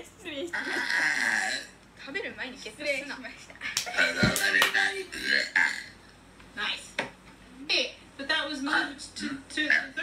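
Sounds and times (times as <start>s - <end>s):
person burping: 0.5s - 1.8s, 4.0s - 4.4s, 5.1s - 6.0s
people talking: 2.0s - 5.2s.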